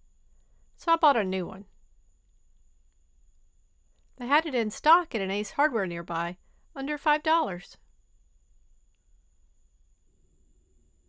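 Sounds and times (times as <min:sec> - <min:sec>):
faint high-pitched tone: 0:00.0 - 0:11.0.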